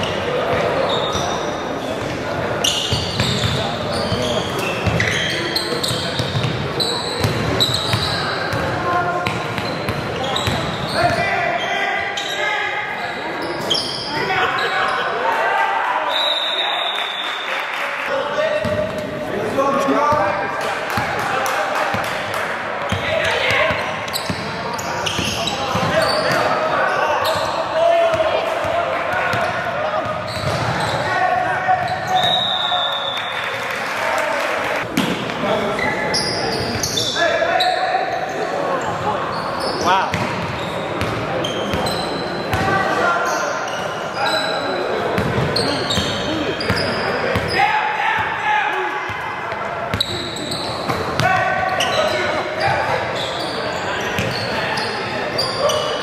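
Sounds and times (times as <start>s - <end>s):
sneaker squeaks: 0.0s - 15.1s, 22.8s - 33.5s, 35.7s - 48.2s, 49.6s - 56.0s
shouts and chatter echoing: 0.0s - 56.0s.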